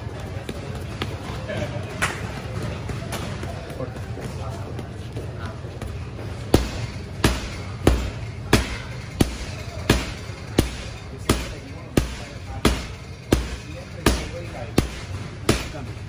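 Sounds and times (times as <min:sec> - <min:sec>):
gloved punches on heavy bag: 0:06.4 - 0:16.0.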